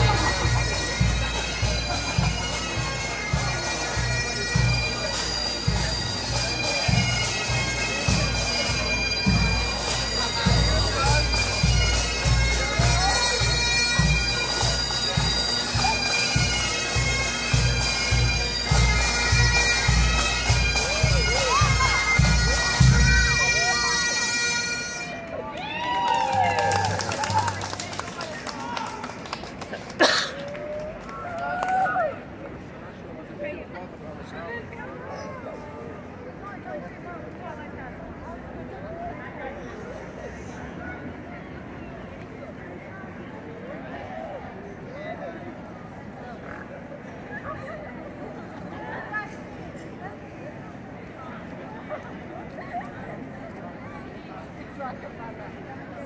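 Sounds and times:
bagpipes playing a tune: 0:00.0 - 0:25.2
crowd voices: 0:00.0 - 0:56.0.

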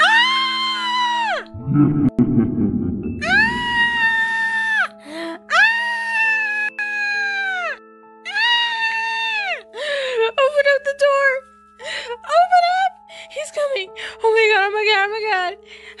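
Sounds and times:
background music with held notes: 0:00.0 - 0:16.0
girl screaming: 0:03.2 - 0:04.9
girl wavering cries: 0:03.2 - 0:09.6.

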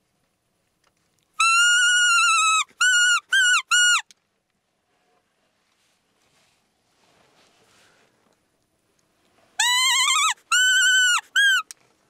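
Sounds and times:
deer call whistle: 0:01.4 - 0:04.0, 0:09.6 - 0:11.7.

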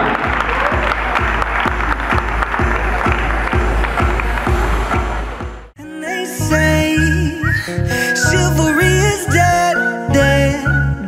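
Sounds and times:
audience applauding: 0:00.0 - 0:05.7
music with thumping beat: 0:00.0 - 0:05.8.

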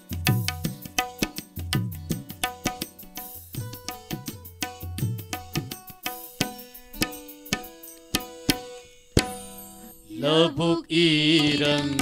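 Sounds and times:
person singing: 0:10.0 - 0:12.0.

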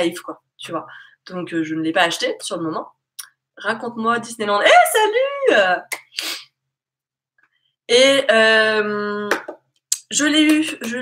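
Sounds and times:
woman's voice: 0:00.0 - 0:03.0, 0:03.6 - 0:06.0, 0:07.9 - 0:11.0.

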